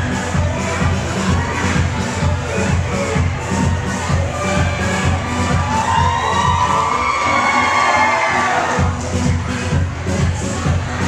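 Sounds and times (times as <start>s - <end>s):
dance music with bass beat: 0.0s - 11.0s
audience cheering and shrieking: 3.0s - 8.9s.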